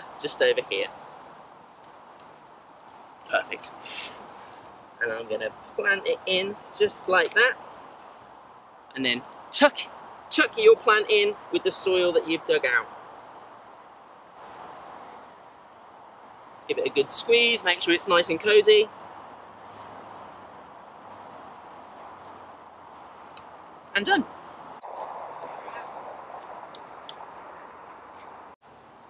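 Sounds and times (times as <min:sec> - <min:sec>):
soft outdoor hiss: 0:00.0 - 0:29.0.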